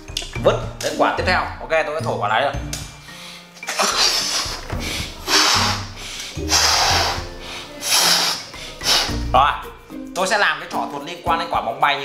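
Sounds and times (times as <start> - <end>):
background music: 0.0 - 12.0
person blowing up a balloon: 3.7 - 9.3.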